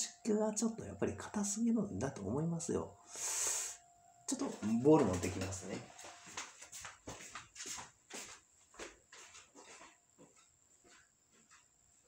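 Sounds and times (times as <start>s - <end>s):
faint footsteps walking: 4.3s - 12.0s.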